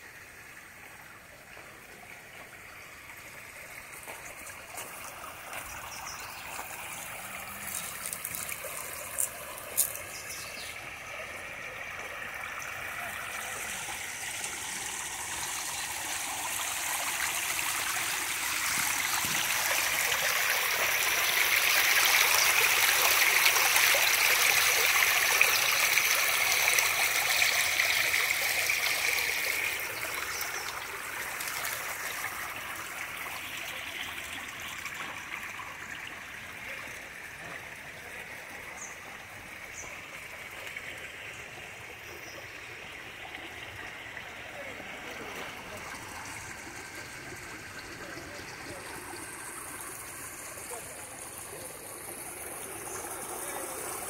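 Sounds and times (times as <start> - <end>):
water rushing over rocks: 3.8 - 38.4, 42.5 - 54.0.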